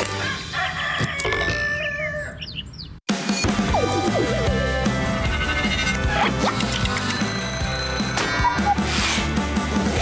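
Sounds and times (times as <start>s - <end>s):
rooster crowing: 0.2s - 2.4s.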